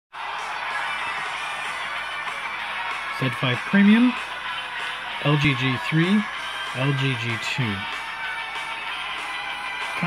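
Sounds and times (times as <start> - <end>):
thin music through phone speakers: 0.2 - 10.0.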